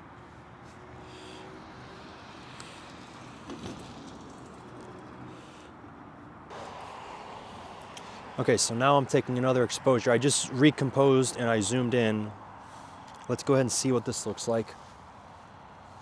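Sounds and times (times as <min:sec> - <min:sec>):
road traffic hiss: 0:00.0 - 0:16.0.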